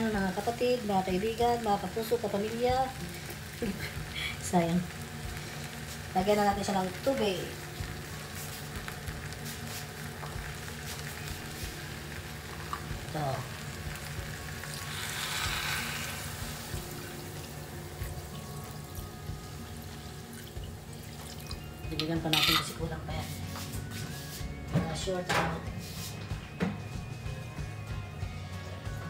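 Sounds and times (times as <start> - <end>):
food sizzling in a pot: 0.0 - 28.9
water poured into pot: 12.5 - 22.7.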